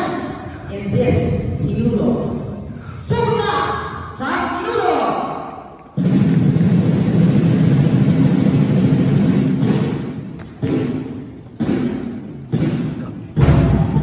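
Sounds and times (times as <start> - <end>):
drum roll and beats: 5.9 - 14.0.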